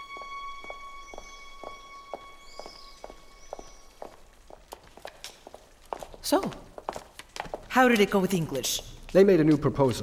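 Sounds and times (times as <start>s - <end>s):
footsteps on stone tile floor: 0.0s - 10.0s
faint bird chirps: 0.8s - 4.2s.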